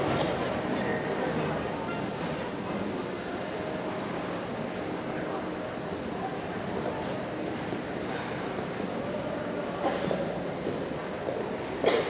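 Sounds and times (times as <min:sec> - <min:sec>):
indoor arena rumble: 0:00.0 - 0:12.0.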